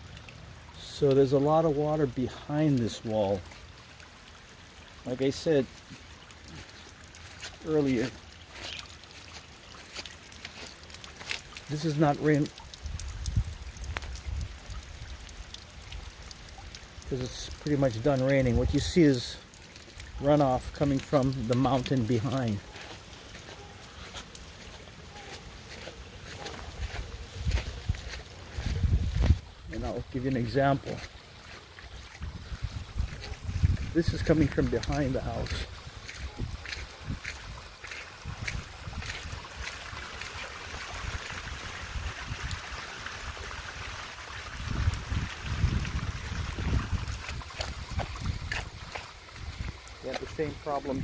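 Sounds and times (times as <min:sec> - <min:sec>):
water trickling over concrete: 0:00.0 - 0:51.0.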